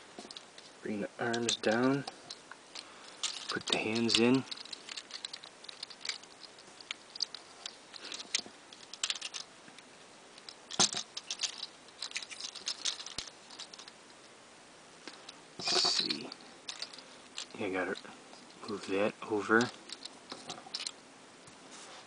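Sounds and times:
plastic toy joints clicking: 0:03.2 - 0:09.5, 0:10.4 - 0:13.9, 0:15.9 - 0:17.6, 0:19.6 - 0:21.0.

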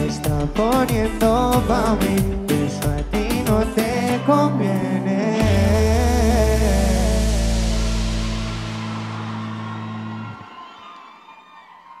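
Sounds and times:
faint crowd cheering: 0:08.3 - 0:12.0.

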